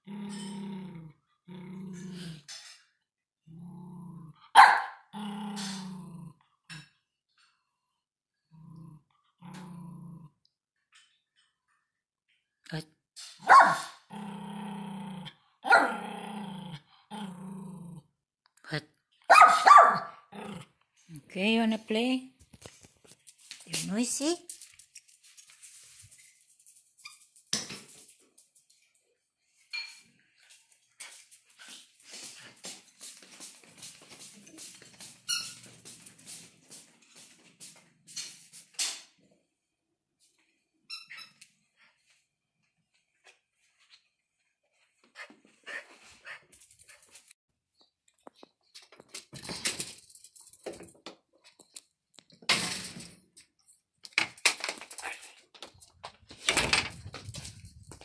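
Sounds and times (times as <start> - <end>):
small dog barking: 4.6 - 5.0, 13.4 - 14.0, 15.6 - 16.0, 19.3 - 20.2.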